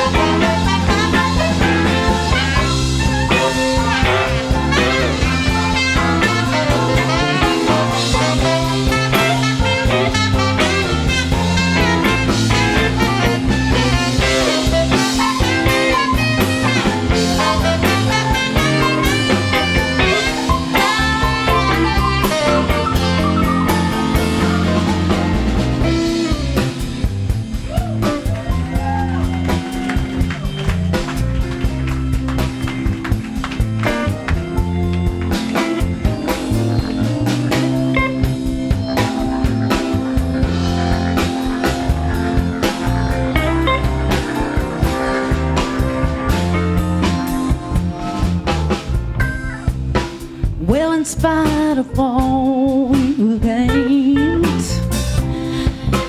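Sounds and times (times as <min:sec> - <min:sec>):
organ: 0:00.0 - 0:50.1
bass: 0:00.0 - 0:56.0
drum kit: 0:00.0 - 0:56.0
electric guitar: 0:00.0 - 0:56.0.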